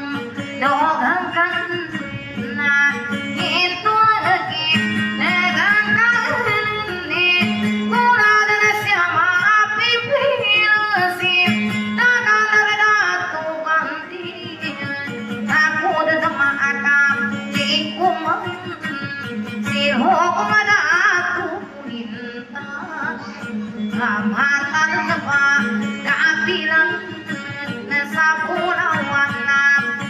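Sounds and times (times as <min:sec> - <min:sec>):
high voice singing: 0:00.0 - 0:30.0
instrumental accompaniment: 0:00.0 - 0:30.0.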